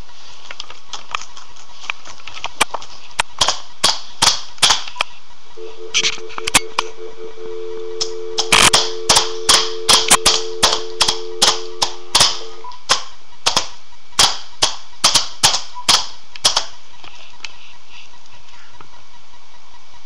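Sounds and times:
steady two-pitch tone: 5.6s - 12.8s.

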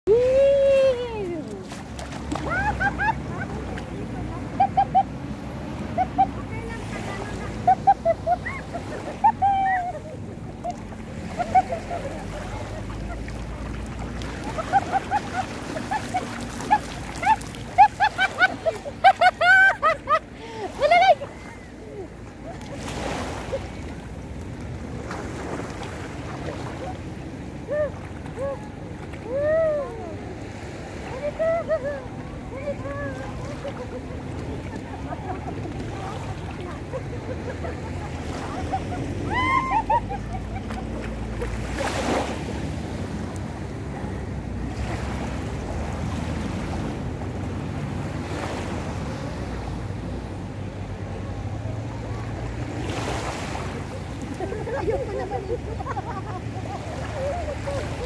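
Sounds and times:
sea water washing: 0.1s - 58.0s.

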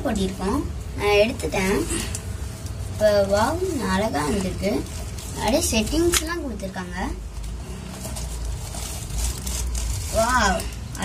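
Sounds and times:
steady low rumble: 0.0s - 11.0s
plastic rustling: 0.1s - 11.0s.

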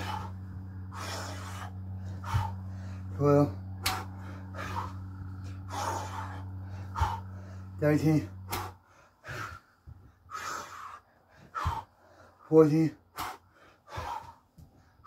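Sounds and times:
man panting: 0.0s - 15.0s
steady low hum: 0.0s - 15.0s.

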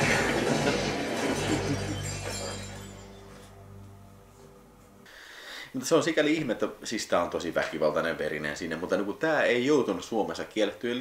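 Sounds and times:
glass and crockery shattering: 0.0s - 3.3s.

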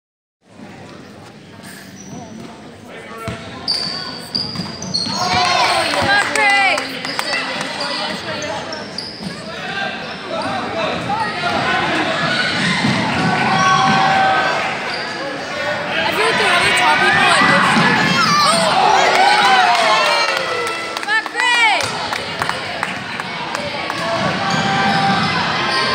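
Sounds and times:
voices talking and shouting: 1.6s - 25.9s.

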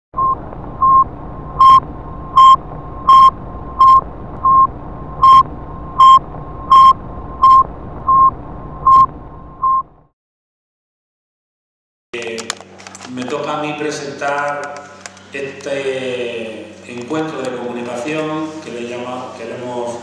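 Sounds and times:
loud electronic beeps: 0.2s - 10.0s
low hum: 0.2s - 10.1s.

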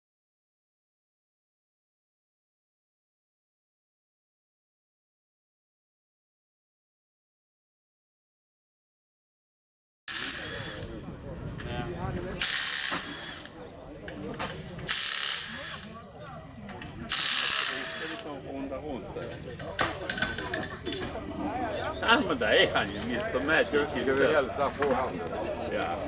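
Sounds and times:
pneumatic impact wrench rattling: 10.1s - 11.0s, 12.4s - 13.6s, 14.4s - 16.0s, 17.1s - 18.3s.

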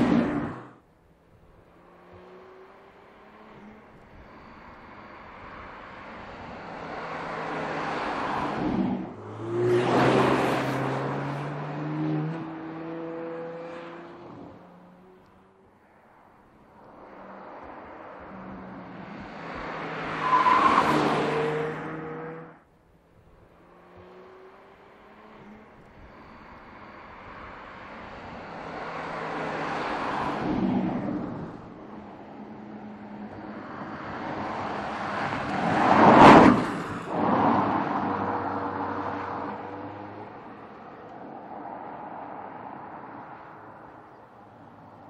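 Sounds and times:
car driving past: 1.9s - 16.1s.

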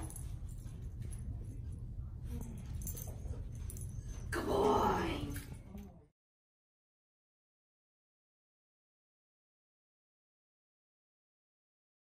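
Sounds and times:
low room hum: 0.0s - 6.1s.

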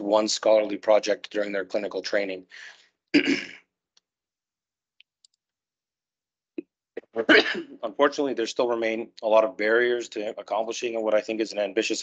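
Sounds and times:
man clearing his throat: 3.2s - 3.6s, 7.2s - 7.8s.

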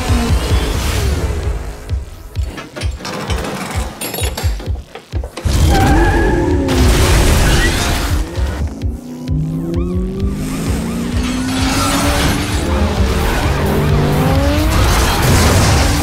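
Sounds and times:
car engines revving hard: 0.0s - 2.1s, 5.5s - 16.0s.

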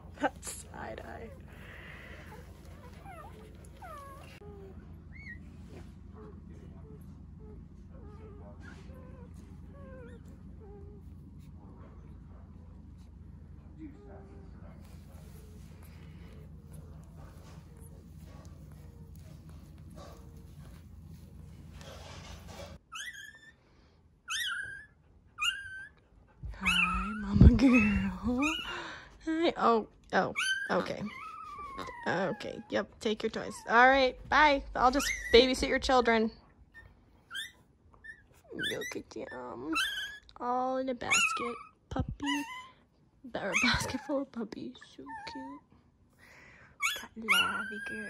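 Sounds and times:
faint low hum: 0.0s - 48.0s
puppies squeaking and whimpering: 1.6s - 5.6s, 22.0s - 23.6s, 24.3s - 26.0s, 26.6s - 28.9s, 30.4s - 32.6s, 34.8s - 35.7s, 36.7s - 40.3s, 41.0s - 42.8s, 43.4s - 44.2s, 46.8s - 48.0s.

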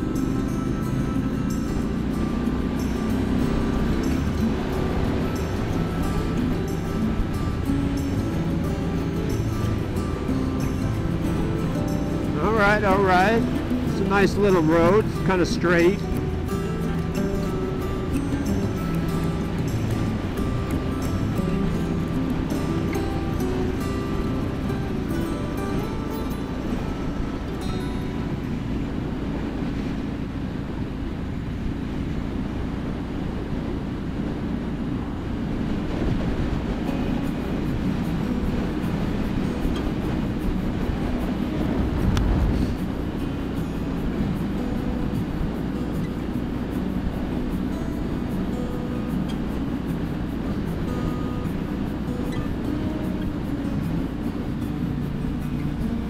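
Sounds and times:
music: 0.0s - 30.3s, 33.7s - 56.0s
motorcycle engine cruising: 0.0s - 56.0s
wind rushing on microphone: 0.0s - 56.0s.

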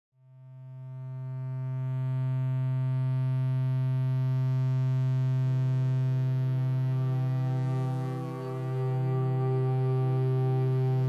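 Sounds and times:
sustained electric viola note: 6.2s - 11.0s.

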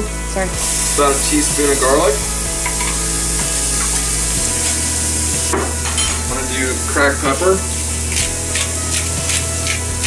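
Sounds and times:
food sizzling in a skillet: 0.5s - 10.0s.

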